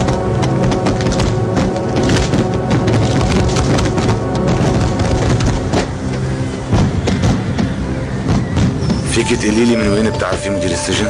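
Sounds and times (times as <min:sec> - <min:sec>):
fireworks crackling and popping: 0:00.0 - 0:09.3
music: 0:00.0 - 0:11.0.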